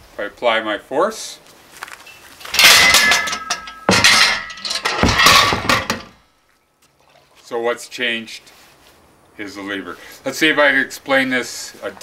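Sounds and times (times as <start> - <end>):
faint metallic ring: 2.1 - 4.8
metal hardware clinking and rattling: 2.4 - 6.2.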